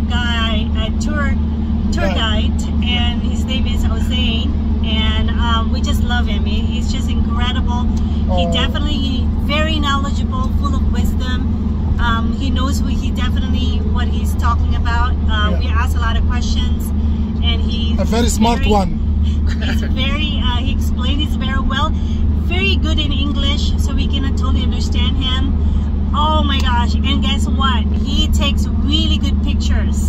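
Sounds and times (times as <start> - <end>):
engine and road drone: 0.0 - 30.0
woman talking: 0.0 - 30.0.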